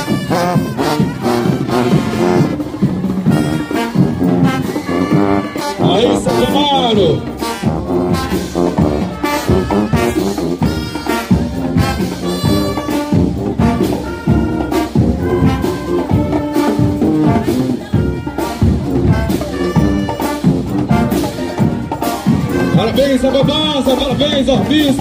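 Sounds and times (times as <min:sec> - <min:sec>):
brass band playing a march: 0:00.0 - 0:25.0.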